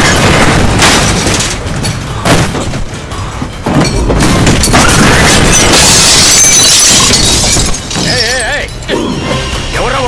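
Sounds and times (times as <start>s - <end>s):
glass shattering: 0.0s - 2.8s, 3.7s - 8.9s
debris clattering: 0.0s - 8.9s.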